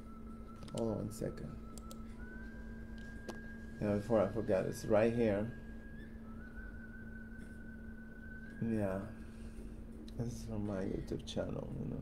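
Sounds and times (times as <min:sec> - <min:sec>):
high-pitched whistle-like tone: 0:00.0 - 0:09.7
low steady hum: 0:00.0 - 0:12.0.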